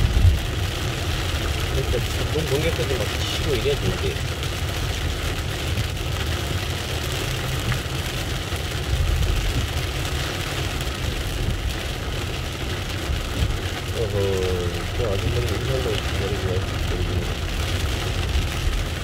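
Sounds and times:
car engine rumble: 0:00.0 - 0:19.0
heavy rain on car roof: 0:00.0 - 0:19.0
tyres on wet road: 0:00.0 - 0:19.0.

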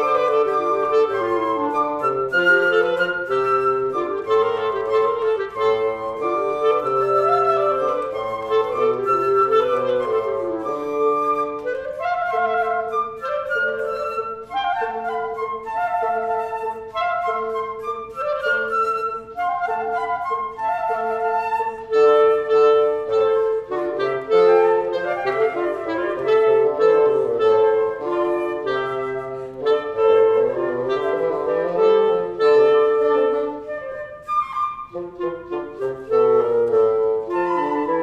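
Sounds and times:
woodwind trio classical piece: 0:00.0 - 0:38.0.

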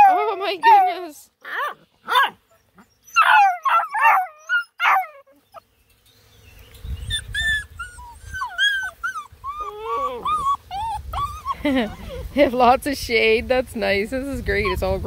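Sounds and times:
puppies whining and squeaking: 0:00.0 - 0:05.6, 0:06.8 - 0:12.4, 0:14.5 - 0:15.0
puppies yelping: 0:00.0 - 0:05.6, 0:07.0 - 0:12.3.

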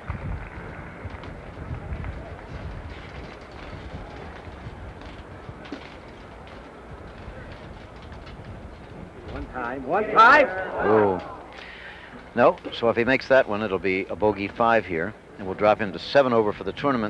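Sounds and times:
faint crowd murmur: 0:00.0 - 0:17.0.

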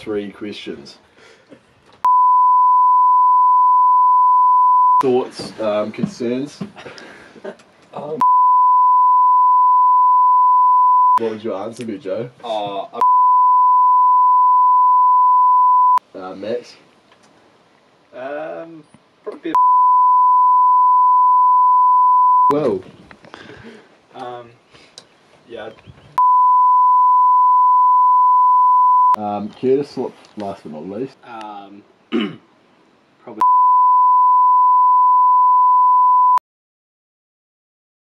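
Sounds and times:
test-tone beep: 0:02.1 - 0:05.0, 0:08.2 - 0:11.2, 0:13.0 - 0:16.0, 0:19.6 - 0:22.6, 0:33.4 - 0:36.4.

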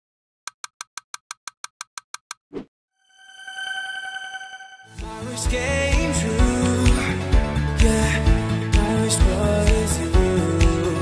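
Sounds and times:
chime-like synth tone: 0:03.0 - 0:05.0.

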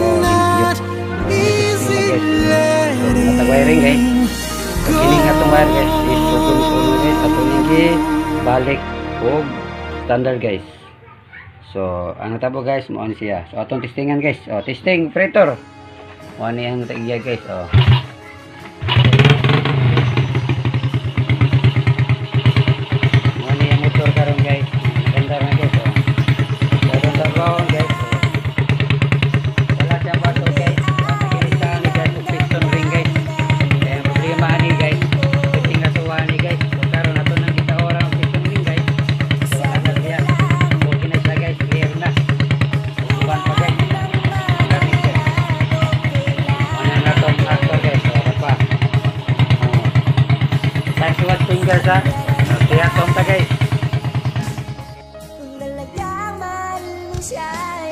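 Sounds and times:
motorcycle engine running: 0:00.0 - 0:09.5, 0:15.8 - 0:57.9
song with singing: 0:00.0 - 0:10.8, 0:26.7 - 0:57.9.

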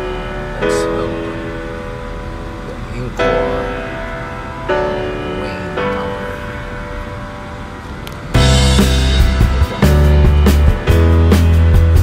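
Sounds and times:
background music held note: 0:00.0 - 0:12.0
low rumble: 0:00.0 - 0:12.0.

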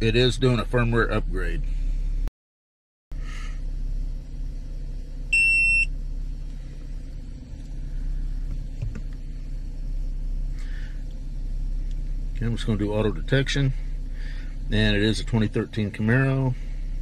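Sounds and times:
car engine idling: 0:00.0 - 0:02.3, 0:03.1 - 0:17.0.

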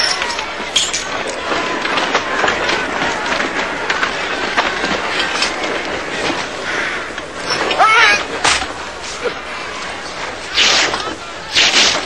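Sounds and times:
knocks and clatters: 0:00.0 - 0:12.0
voices: 0:00.0 - 0:12.0.

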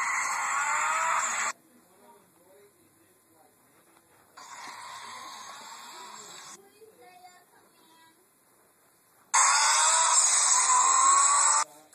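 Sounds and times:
toy car electric motor whirring: 0:00.0 - 0:01.5, 0:04.4 - 0:06.6, 0:09.4 - 0:11.7.

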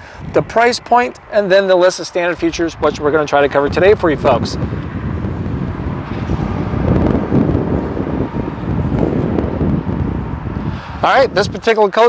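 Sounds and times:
strong wind buffeting microphone: 0:00.0 - 0:12.0.

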